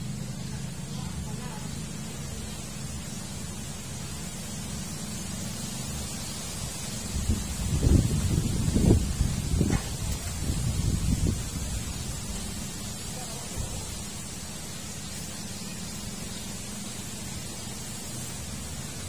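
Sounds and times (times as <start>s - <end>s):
steady low rumble: 0.0s - 17.6s
wind buffeting microphone: 7.0s - 12.8s.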